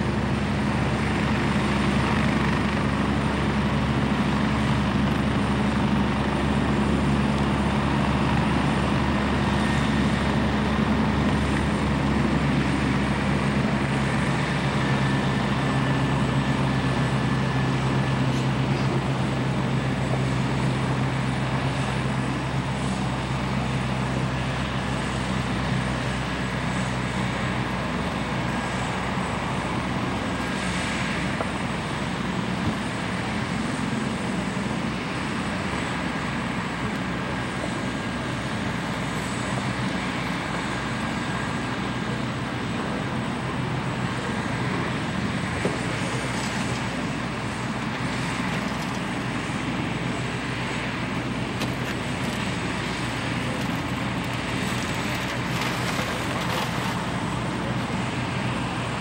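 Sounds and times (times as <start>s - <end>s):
helicopter engine and rotor hum: 0.0s - 59.0s.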